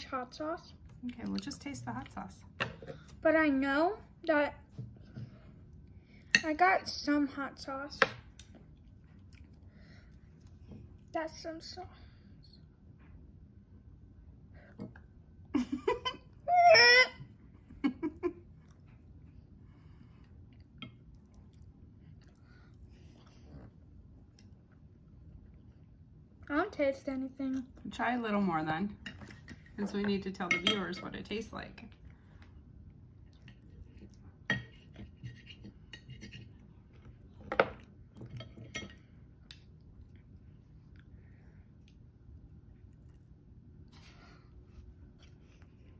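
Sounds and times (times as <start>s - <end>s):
utensils clinking on plate: 29.1s - 31.2s.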